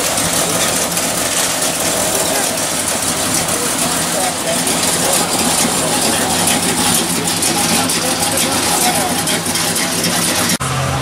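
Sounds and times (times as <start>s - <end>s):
car engine idling: 0.0s - 11.0s
people talking: 0.0s - 11.0s.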